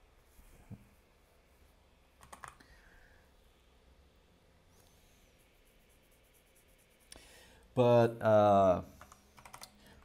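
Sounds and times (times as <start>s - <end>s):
keyboard keystrokes clicking: 2.2s - 2.6s, 9.0s - 9.7s.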